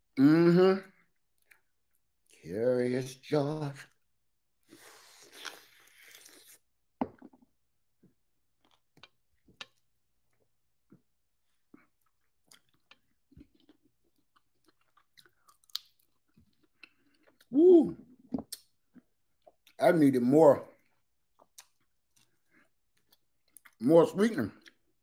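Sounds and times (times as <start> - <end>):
person biting into fruit: 4.8 - 6.6.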